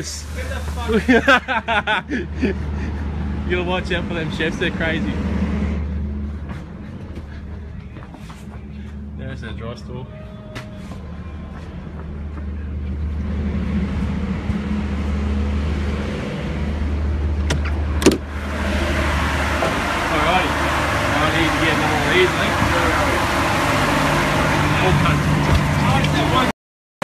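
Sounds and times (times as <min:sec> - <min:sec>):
low mechanical hum: 0:00.0 - 0:26.5
even rushing noise: 0:12.7 - 0:26.5.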